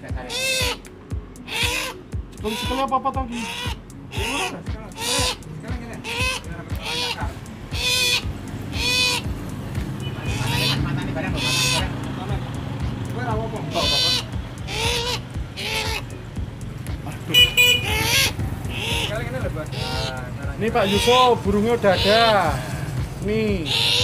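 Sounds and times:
bird hoarse call: 0.2s - 12.2s, 13.6s - 16.3s, 17.3s - 23.0s, 23.6s - 24.0s.

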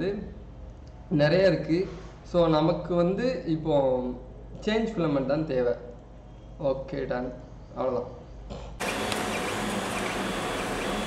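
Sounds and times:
printer fans and motors whirring: 8.8s - 11.0s.

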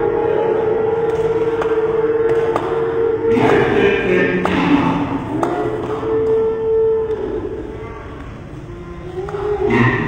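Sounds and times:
worship singing: 0.0s - 7.2s.

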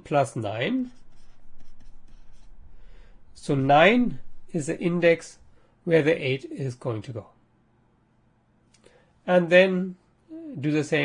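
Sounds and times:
stylus writing on tablet: 0.8s - 2.7s.

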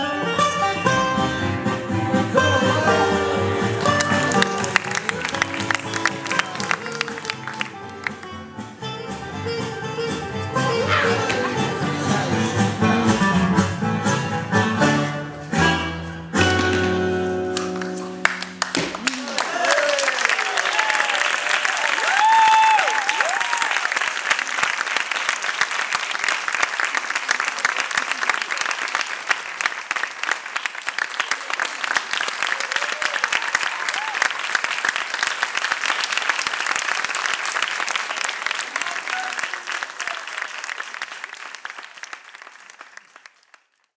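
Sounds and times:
audience applauding: 3.3s - 8.4s, 17.5s - 43.9s
whoops and cheering: 19.0s - 23.9s, 32.4s - 34.4s.

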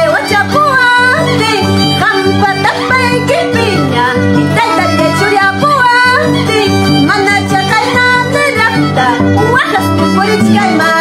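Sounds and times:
woman singing in a high voice: 0.0s - 11.0s.

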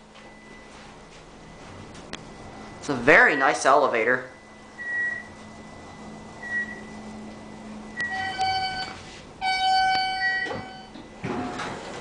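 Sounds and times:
faint steady hum: 0.0s - 11.2s
elevator electronic chime: 0.1s - 11.6s.

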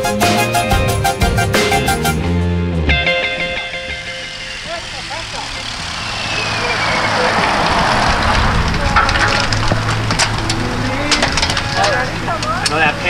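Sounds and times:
bicycle tyre noise: 3.9s - 13.0s
wind rushing over microphone: 5.4s - 11.7s.

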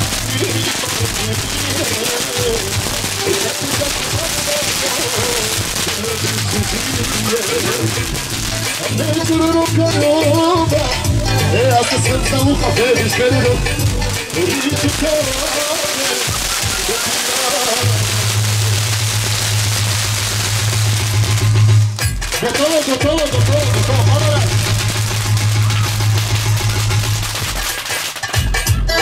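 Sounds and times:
band music: 0.0s - 29.0s
fireworks crackling and hissing: 0.0s - 29.0s.

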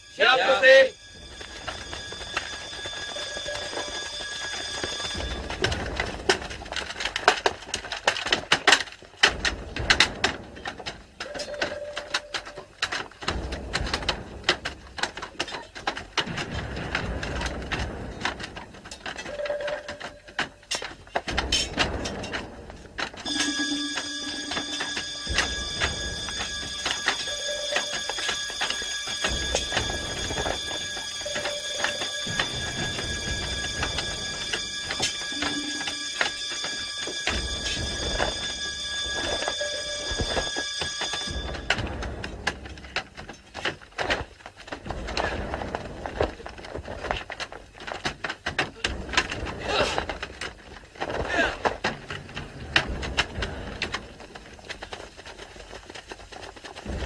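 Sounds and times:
metallic ringing tones: 18.9s - 43.1s.

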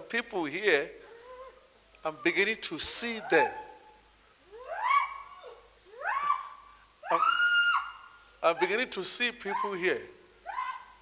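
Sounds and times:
high voice crying out: 3.0s - 3.9s, 4.5s - 8.8s, 9.5s - 11.0s.

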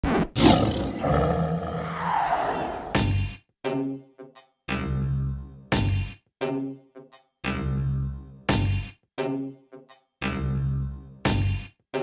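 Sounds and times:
lion roaring: 0.4s - 3.0s.

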